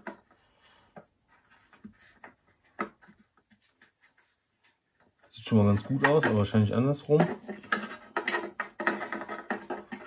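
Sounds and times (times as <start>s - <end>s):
plastic scraping on metal housing: 5.6s - 10.0s.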